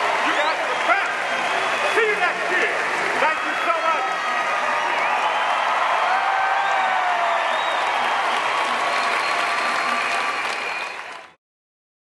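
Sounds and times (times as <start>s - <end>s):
crowd applauding: 0.0s - 11.4s.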